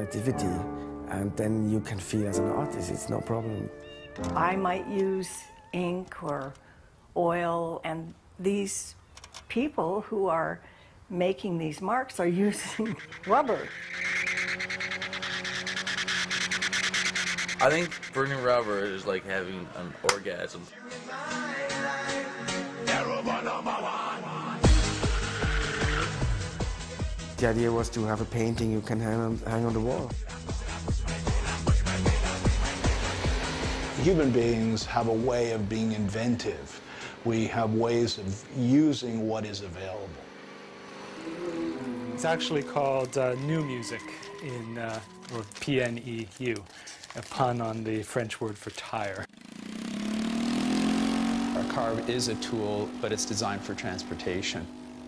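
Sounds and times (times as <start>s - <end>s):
spinning tyre screeching: 12.2s - 20.0s, 24.6s - 27.0s, 31.4s - 46.4s, 49.3s - 55.0s
car engine revving steadily: 32.0s - 42.8s, 49.4s - 55.0s.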